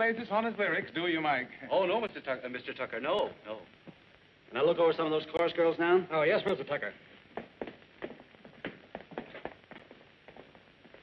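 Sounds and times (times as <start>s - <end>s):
faint footsteps: 3.8s - 4.1s, 7.0s - 11.0s.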